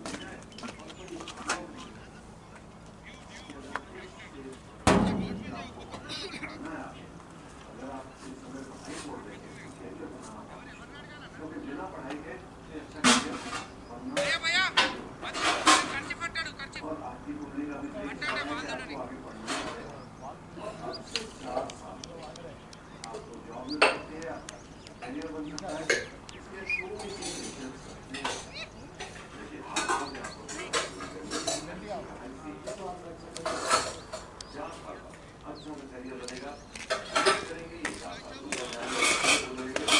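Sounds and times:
players shouting an appeal: 14.0s - 21.2s.

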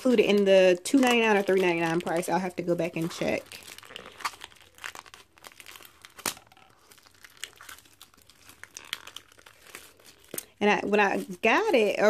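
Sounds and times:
plastic wrap crinkling: 0.0s - 12.0s.

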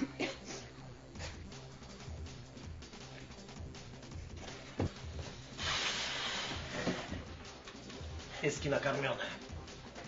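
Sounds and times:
music with low pulsing beat: 0.0s - 10.0s
thump: 4.8s - 5.0s
loud burst of hiss: 5.5s - 6.8s.

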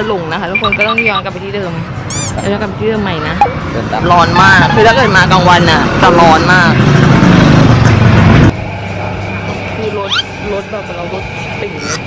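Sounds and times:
motor vehicle running: 0.0s - 12.0s.

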